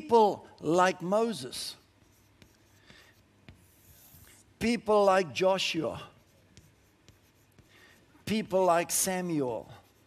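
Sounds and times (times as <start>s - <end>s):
chalk scratching on chalkboard: 1.4s - 10.0s
soft chalk taps: 1.9s - 4.6s, 6.2s - 8.6s.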